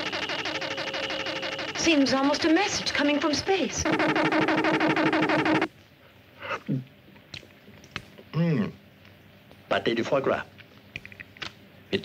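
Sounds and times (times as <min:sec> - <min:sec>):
rapid falling electronic chirps: 0:00.0 - 0:05.7.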